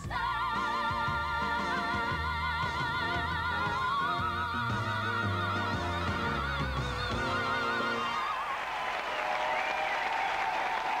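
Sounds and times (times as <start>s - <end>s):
audience applauding: 8.1s - 11.0s.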